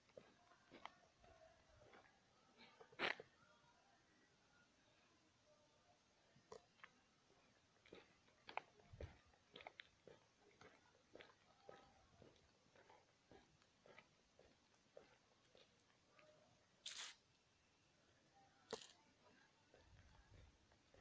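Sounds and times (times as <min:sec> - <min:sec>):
rustles: 0:16.8 - 0:17.2.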